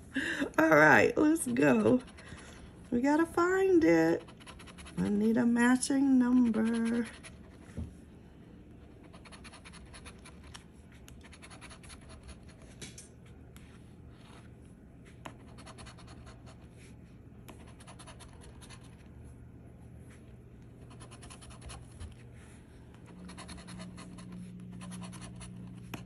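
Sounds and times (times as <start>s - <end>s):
coin scratching lottery ticket: 4.2s - 5.1s.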